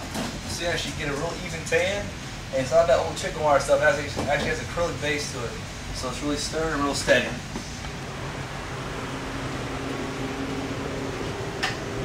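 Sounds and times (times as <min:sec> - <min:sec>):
fans humming: 0:00.0 - 0:12.0.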